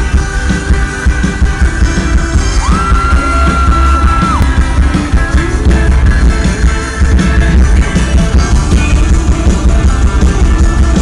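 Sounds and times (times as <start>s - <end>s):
live rock band playing loudly: 0.0s - 11.0s.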